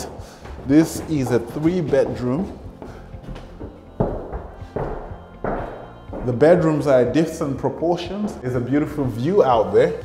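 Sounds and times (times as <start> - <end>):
heavy footsteps on bare floor: 0.0 - 8.7
faint music: 0.0 - 10.0.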